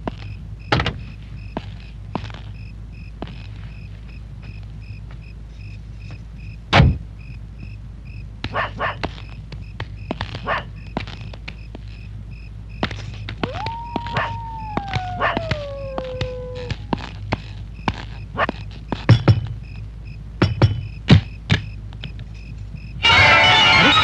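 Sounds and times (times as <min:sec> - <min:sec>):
low hum: 0:00.0 - 0:24.0
heavy thump: 0:06.7 - 0:07.0
dog barking: 0:08.5 - 0:09.1, 0:10.4 - 0:10.7, 0:14.1 - 0:16.7
dog howling: 0:13.4 - 0:17.1.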